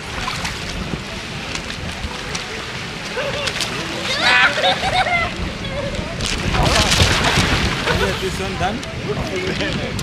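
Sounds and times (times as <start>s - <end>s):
faint water splashes: 0.0s - 10.0s
pool water lapping: 0.0s - 10.0s
wind rumbling on microphone: 0.0s - 10.0s.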